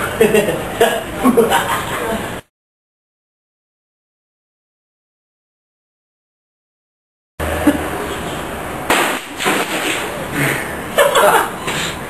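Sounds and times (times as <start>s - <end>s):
machete whacking plastic jug: 8.9s - 10.1s.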